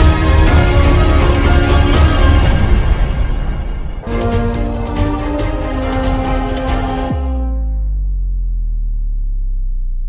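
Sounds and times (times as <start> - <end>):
deep bass drone: 0.0 - 10.0.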